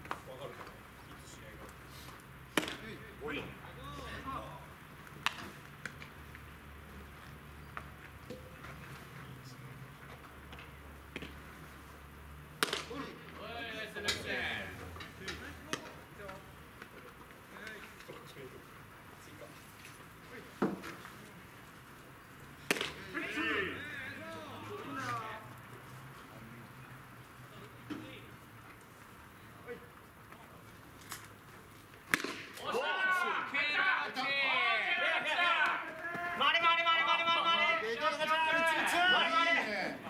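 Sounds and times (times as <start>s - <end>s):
baseball smacking into leather mitt: 2.5s - 2.8s, 5.2s - 6.0s, 12.6s - 13.0s, 22.6s - 23.0s, 32.1s - 32.6s
sharp smack: 12.6s - 13.0s, 32.1s - 32.6s.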